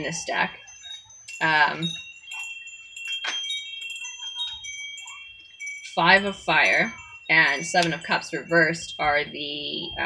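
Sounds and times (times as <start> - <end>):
wind chimes ringing: 0.0 - 10.0.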